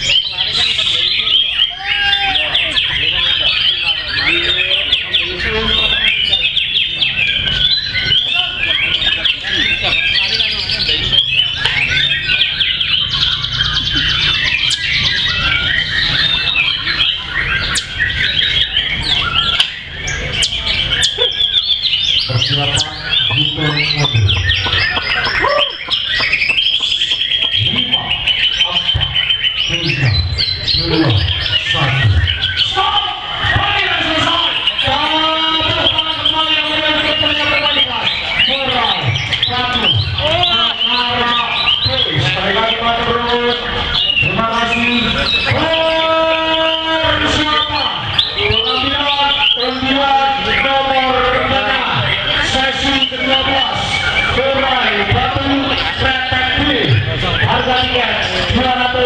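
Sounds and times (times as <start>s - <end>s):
birds singing rapid chirps: 0.0s - 59.0s.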